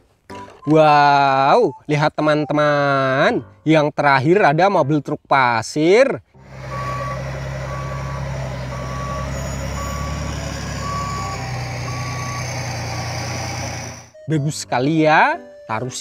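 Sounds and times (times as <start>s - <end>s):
dump truck engine running: 6.4s - 14.2s
reversing alarm beeping: 6.4s - 14.7s.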